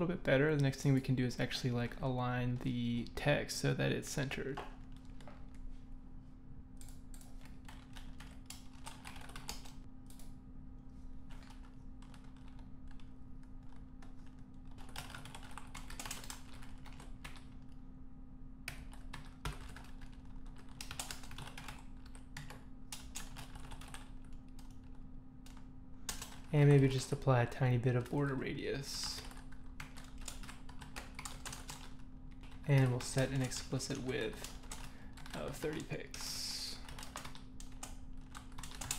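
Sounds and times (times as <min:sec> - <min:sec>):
faint steady hum: 0:00.0 - 0:38.9
computer keyboard typing: 0:06.8 - 0:10.3, 0:11.3 - 0:17.8, 0:18.7 - 0:27.2, 0:27.9 - 0:38.9.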